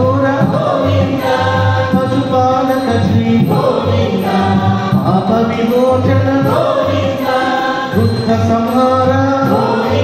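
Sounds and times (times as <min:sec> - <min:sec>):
instrumental accompaniment: 0:00.0 - 0:10.0
voices singing devotional song: 0:00.0 - 0:10.0.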